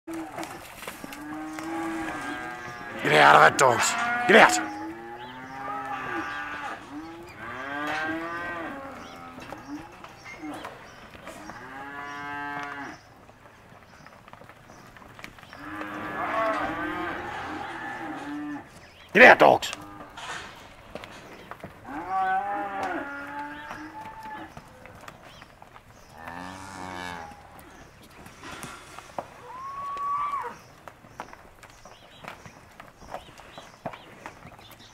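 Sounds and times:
cattle mooing: 0.1s - 10.7s, 11.4s - 13.0s, 15.6s - 18.7s, 21.8s - 24.6s, 26.2s - 30.6s.

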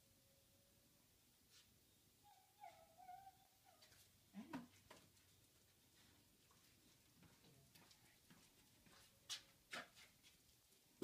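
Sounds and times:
faint high animal call: 2.2s - 4.7s.

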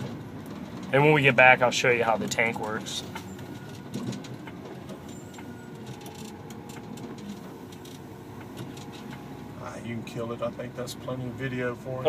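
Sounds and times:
light clicks and rattles: 0.0s - 9.2s
truck engine rumbling: 0.0s - 12.0s.

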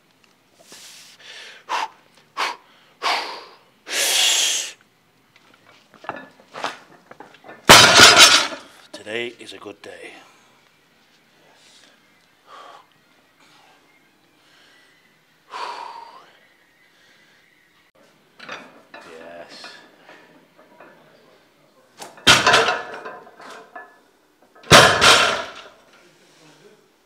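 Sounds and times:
barbell dropped with clanking thud: 7.5s - 8.6s, 22.0s - 23.9s, 24.6s - 25.7s.

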